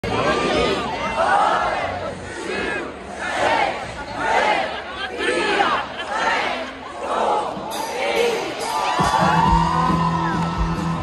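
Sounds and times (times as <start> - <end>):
concert crowd shouting and cheering: 0.0 - 11.0.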